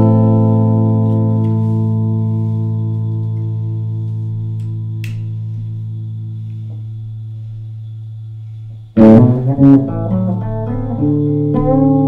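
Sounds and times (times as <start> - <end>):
picked electric guitar notes: 0.0 - 6.7, 9.0 - 12.0
electric guitar chord ringing: 0.0 - 7.4, 9.0 - 12.0.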